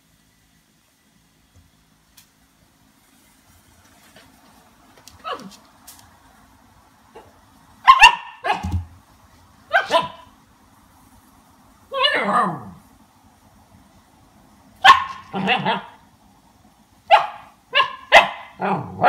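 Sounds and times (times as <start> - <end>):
puppy barking: 7.2 - 8.8, 9.7 - 10.3, 14.8 - 16.0, 17.1 - 19.0.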